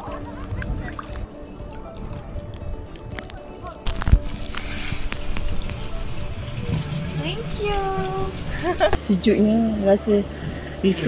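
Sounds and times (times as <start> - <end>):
background music: 0.0 - 11.0
low rumbling ambience: 0.0 - 11.0.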